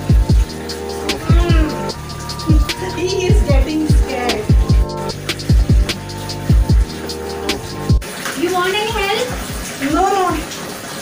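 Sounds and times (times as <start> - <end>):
music with low beat: 0.0 - 8.0
kitten meowing: 1.2 - 3.6.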